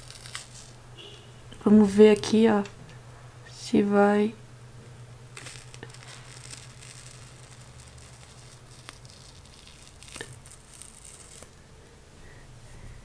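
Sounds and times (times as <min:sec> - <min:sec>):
face mask peeling off skin: 0:00.0 - 0:00.8, 0:05.3 - 0:11.6
low steady hum: 0:00.0 - 0:13.0.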